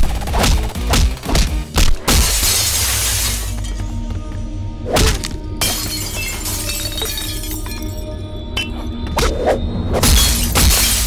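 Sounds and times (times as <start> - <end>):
dramatic background music: 0.0 - 11.0
glass shattering: 2.1 - 3.8, 5.6 - 8.0, 10.0 - 11.0.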